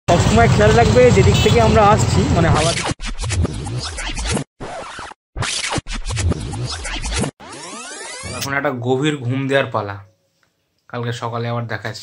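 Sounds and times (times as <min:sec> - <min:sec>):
record scratch effects: 0:01.4 - 0:08.6.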